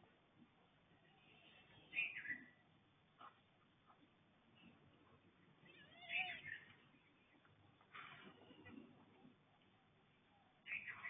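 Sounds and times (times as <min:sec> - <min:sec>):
faint background hiss: 0:00.0 - 0:11.0
high animal call: 0:05.6 - 0:06.7.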